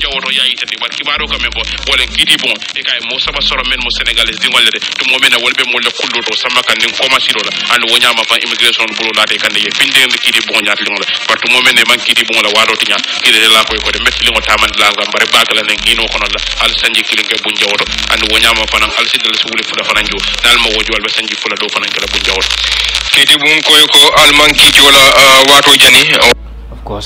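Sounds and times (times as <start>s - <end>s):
radio news broadcast speech: 0.0s - 27.0s.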